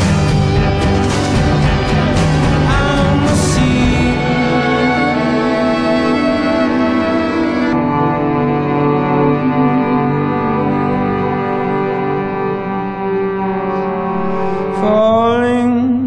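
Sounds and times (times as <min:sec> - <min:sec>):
long bowed string notes: 0:00.0 - 0:16.0
low bass: 0:00.0 - 0:16.0.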